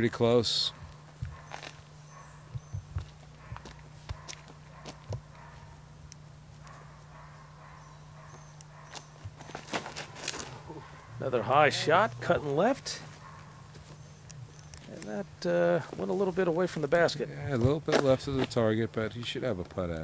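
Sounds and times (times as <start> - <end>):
steady low hum: 0.0 - 20.0
soft footsteps and knocks: 0.7 - 5.7, 8.2 - 10.5.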